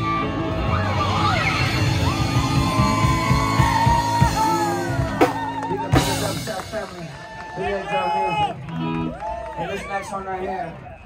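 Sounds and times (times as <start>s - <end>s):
band music: 0.0s - 11.0s.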